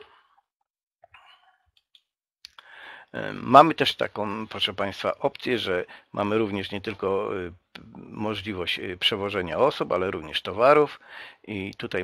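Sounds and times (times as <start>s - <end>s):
soft breath: 2.6s - 3.1s, 11.0s - 11.4s.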